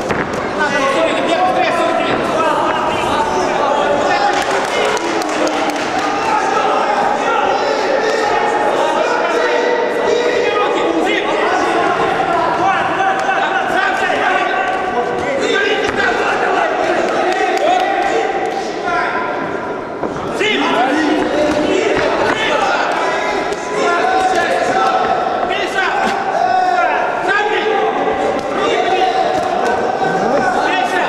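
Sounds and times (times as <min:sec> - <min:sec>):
men shouting: 0:28.6 - 0:31.0.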